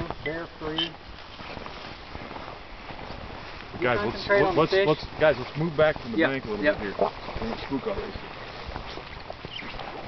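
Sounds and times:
footsteps on muddy grass: 0.0 - 10.0
steady outdoor noise: 0.0 - 10.0.

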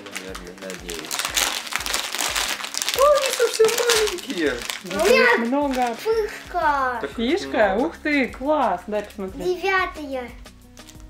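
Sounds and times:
plastic snack packets crinkling: 0.0 - 6.6, 10.8 - 11.0.

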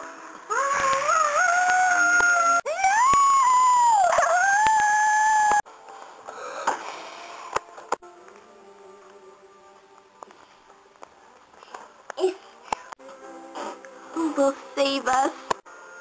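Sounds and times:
child howling: 0.5 - 5.6.

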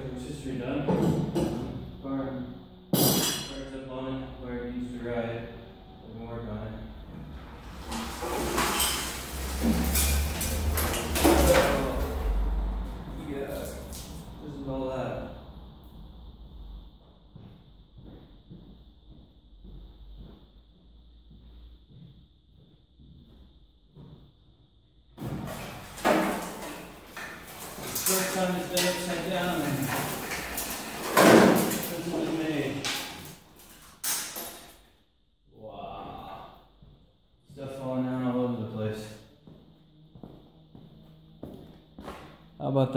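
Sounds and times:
metal creaking and clanking: 7.0 - 14.0, 25.2 - 34.9.

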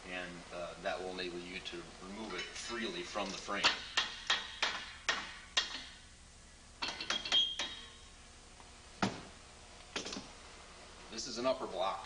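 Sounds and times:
steel parts knocking and clanking: 2.3 - 6.0, 6.8 - 8.0.

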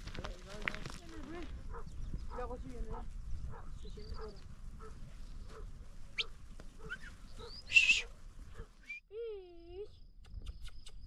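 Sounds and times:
bird-like chirps: 6.2 - 8.1, 9.6 - 11.0
loud shrill call: 7.6 - 8.1.

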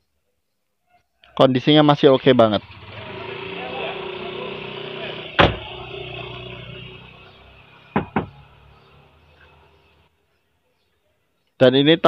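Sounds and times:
car door thud: 5.4 - 5.7, 8.0 - 8.3.

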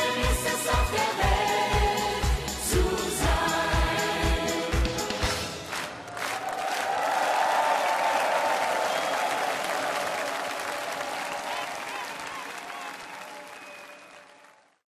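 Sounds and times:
audience applauding: 5.6 - 14.8.

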